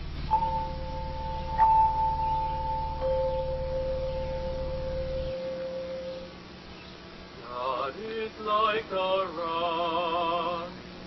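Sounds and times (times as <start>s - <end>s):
higher held musical note: 0.0s - 6.6s
lower held musical note: 0.0s - 6.7s.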